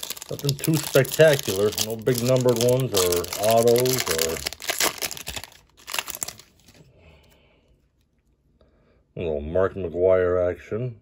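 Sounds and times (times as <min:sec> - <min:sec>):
foil wrapper crinkling: 0:00.0 - 0:06.8.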